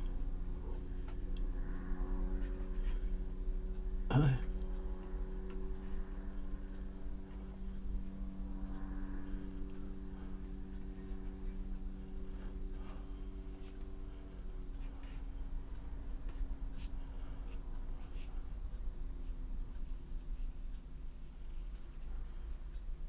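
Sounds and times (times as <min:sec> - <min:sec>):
steady hum: 0:00.0 - 0:23.0.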